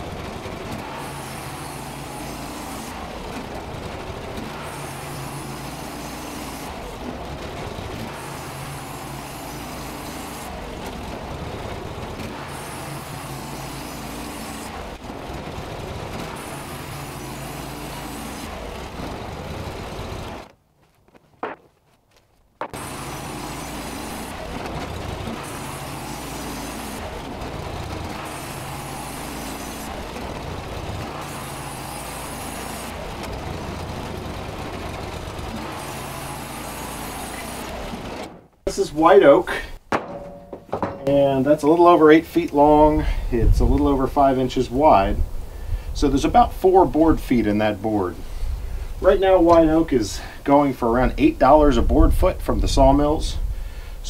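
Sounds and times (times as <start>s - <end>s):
band sawmill running: 0.0s - 54.0s.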